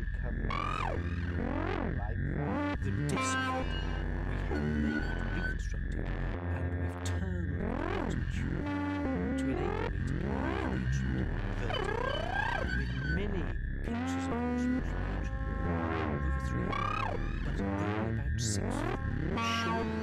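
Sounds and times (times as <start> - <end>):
low bass drone: 0.0 - 20.0
gliding electronic synth tones: 11.6 - 13.3.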